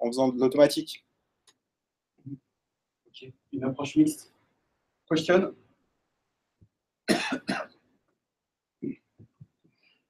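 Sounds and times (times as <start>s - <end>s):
person coughing: 7.1s - 7.8s.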